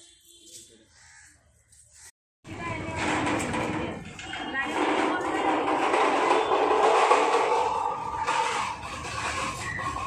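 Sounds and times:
metal trolley rattling on paving: 0:02.6 - 0:10.0.

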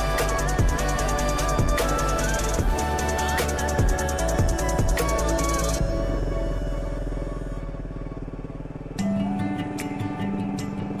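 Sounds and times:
faint background music: 0:00.0 - 0:11.0
motorcycle engine running: 0:00.0 - 0:11.0.

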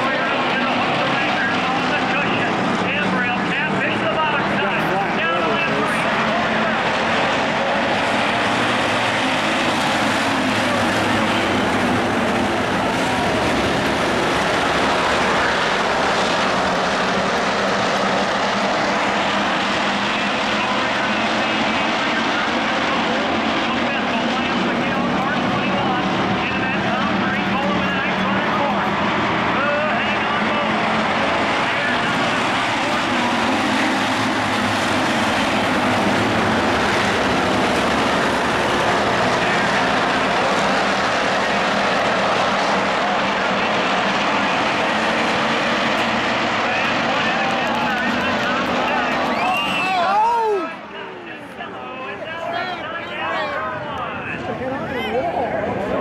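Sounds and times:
spectators' voices: 0:00.0 - 0:17.4, 0:18.1 - 0:56.0
race car engines at speed: 0:00.0 - 0:56.0.

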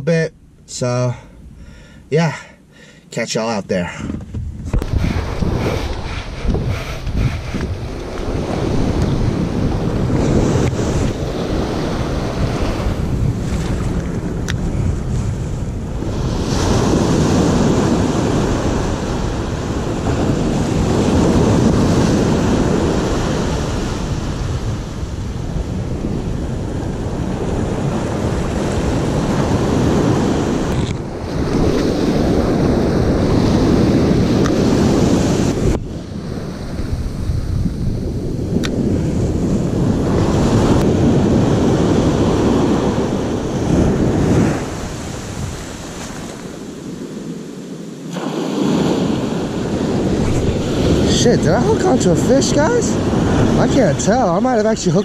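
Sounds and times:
wind buffeting microphone: 0:03.9 - 0:55.0
ocean surf breaking: 0:04.7 - 0:55.0.

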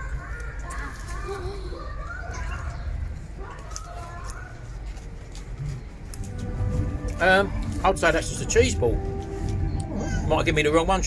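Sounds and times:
low outdoor rumble: 0:00.0 - 0:11.0
light background music: 0:05.6 - 0:11.0.

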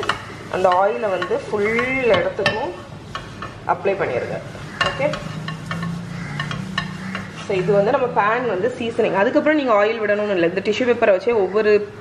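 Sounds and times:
tissue rubbing a frying pan: 0:01.9 - 0:08.1.

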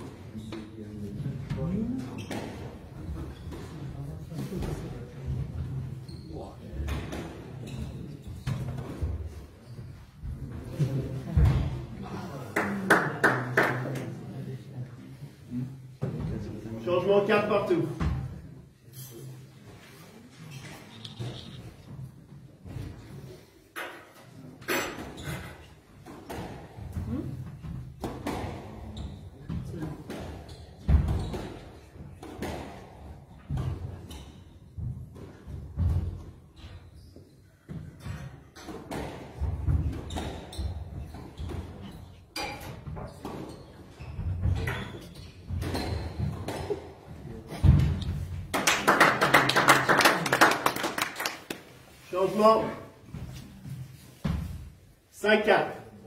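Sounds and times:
spectators clapping: 0:12.5 - 0:14.1, 0:48.5 - 0:51.8.

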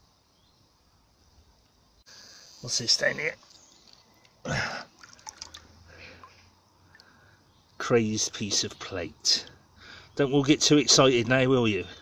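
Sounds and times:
water dripping: 0:03.9 - 0:07.8
hand splashing in water: 0:04.9 - 0:06.4.

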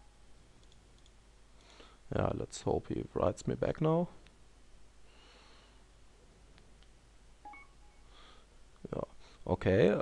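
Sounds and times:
electronic message alert chime: 0:07.5 - 0:08.0.

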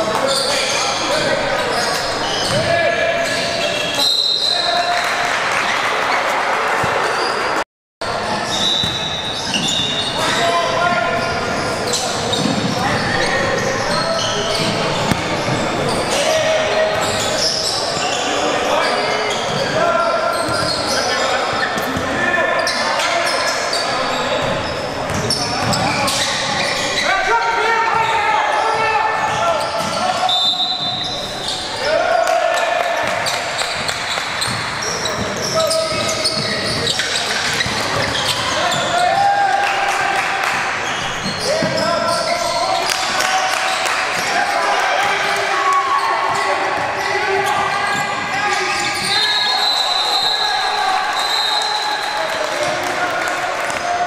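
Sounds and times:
sneakers squeaking: 0:00.0 - 0:39.4, 0:40.2 - 0:52.9
basketballs bouncing on hardwood floor: 0:14.6 - 0:15.8.

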